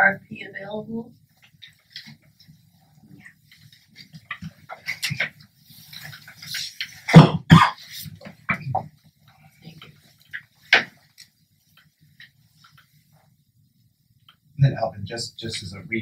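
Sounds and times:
paper rustling: 0:03.3 - 0:07.1.

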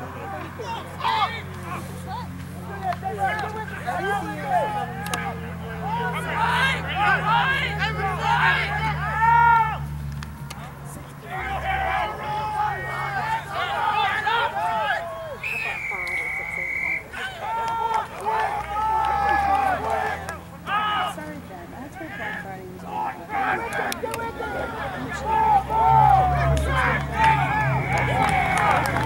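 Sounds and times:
players shouting at a distance: 0:00.0 - 0:29.0
referee's whistle blast: 0:15.4 - 0:17.2.

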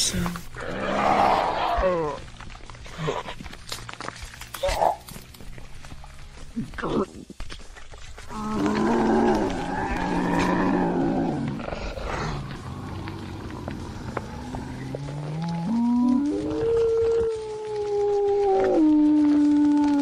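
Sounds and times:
deep rough growl: 0:00.0 - 0:03.4, 0:08.2 - 0:19.7
long held howl: 0:08.2 - 0:20.0.

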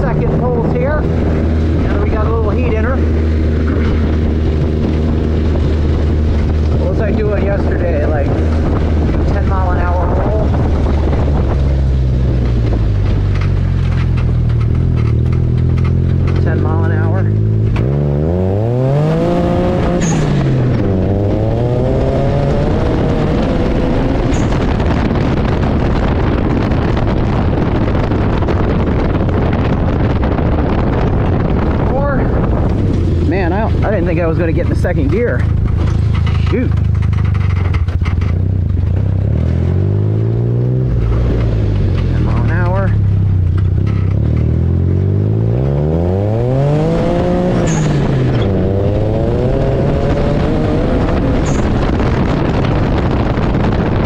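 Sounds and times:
buggy engine revving: 0:00.0 - 0:54.0.

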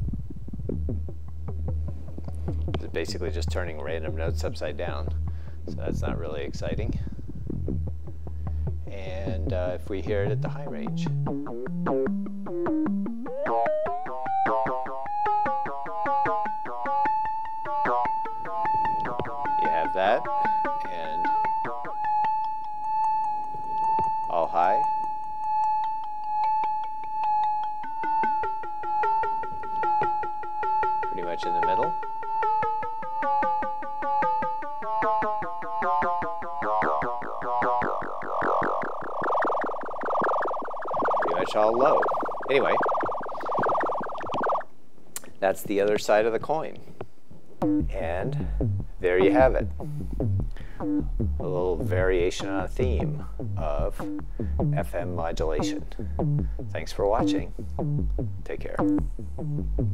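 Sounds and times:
synthesizer tone pulsing: 0:08.8 - 0:44.8, 0:47.6 - 0:59.9
synthesizer buzzing cluster: 0:09.5 - 0:44.8.

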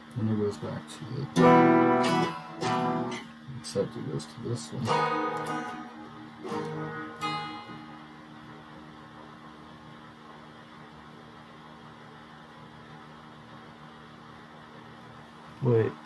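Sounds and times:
low amplifier hum: 0:00.0 - 0:16.0
electric guitar strums: 0:01.2 - 0:03.6, 0:04.6 - 0:08.8.

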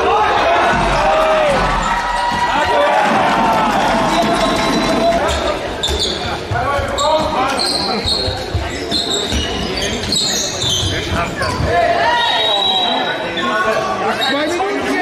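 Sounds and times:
players shouting: 0:00.0 - 0:05.6
shoes squeaking on court: 0:04.5 - 0:11.7.

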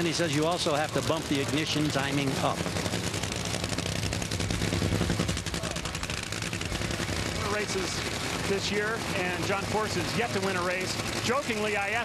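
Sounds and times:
race car engine idling: 0:00.0 - 0:12.0.

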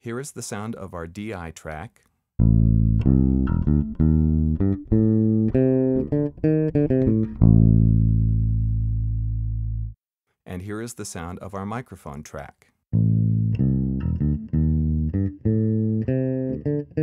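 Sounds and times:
electric bass guitar riff: 0:02.4 - 0:10.0, 0:13.0 - 0:17.0.

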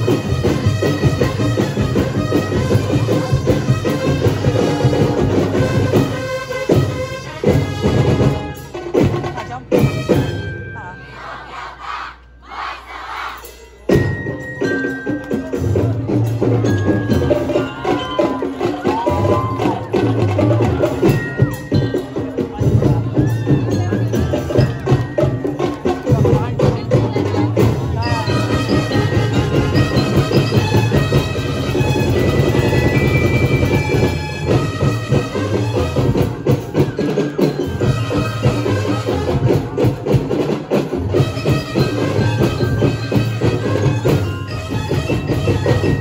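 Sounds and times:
music: 0:00.0 - 0:46.0
group of voices shouting in unison: 0:11.0 - 0:13.6.

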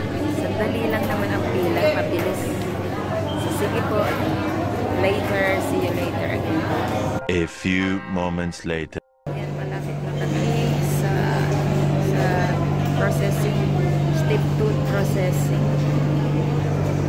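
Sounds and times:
murmur of many voices: 0:00.0 - 0:17.0.

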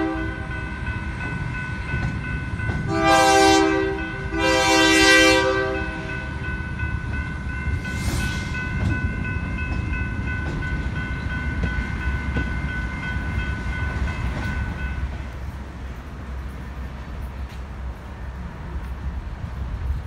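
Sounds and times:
train air horn blasts: 0:00.0 - 0:00.6, 0:02.9 - 0:06.4
crossing signal bell ringing: 0:00.0 - 0:17.4
rumble of rolling train cars: 0:00.0 - 0:20.0.

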